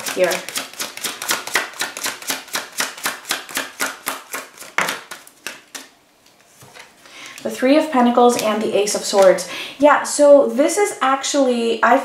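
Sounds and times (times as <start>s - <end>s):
cards being shuffled: 0.0s - 7.0s.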